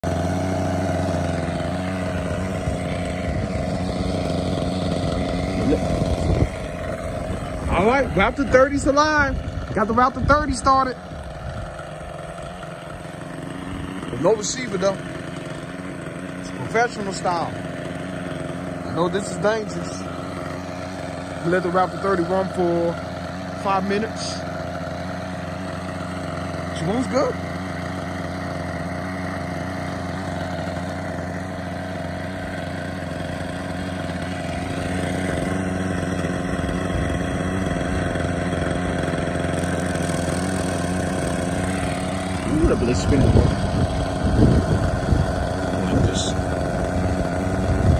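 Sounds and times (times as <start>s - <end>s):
model helicopter engine running: 0.0s - 47.9s.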